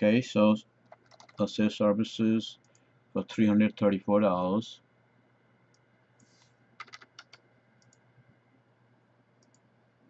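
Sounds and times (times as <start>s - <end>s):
faint keyboard keystrokes: 0.9s - 1.5s, 5.7s - 8.0s.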